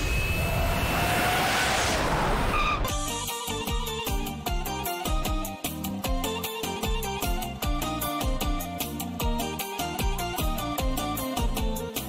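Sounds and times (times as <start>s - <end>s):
jet airliner flyover roar: 0.0s - 2.9s
music with regular beat: 2.9s - 12.0s.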